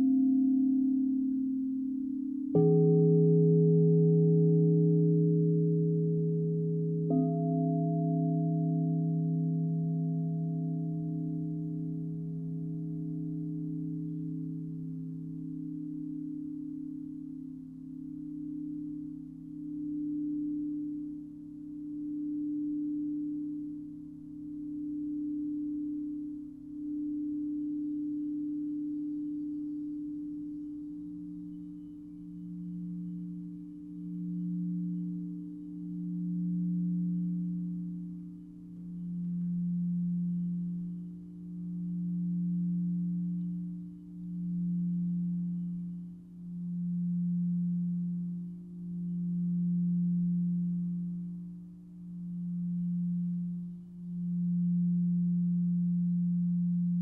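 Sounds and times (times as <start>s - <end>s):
deep singing bowl tone: 0.0s - 57.0s
high singing bowl tone: 0.0s - 57.0s.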